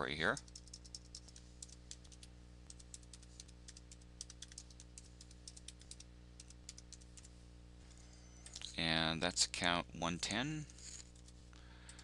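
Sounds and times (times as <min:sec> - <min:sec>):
low hum: 0:00.4 - 0:12.0.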